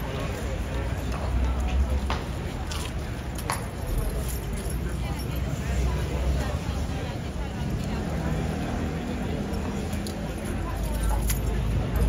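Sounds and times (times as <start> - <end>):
low traffic rumble: 0.0 - 12.0.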